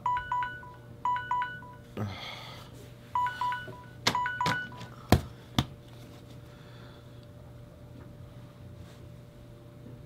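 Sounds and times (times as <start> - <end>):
smartphone ringtone beeping: 0.0 - 1.8, 3.2 - 4.9.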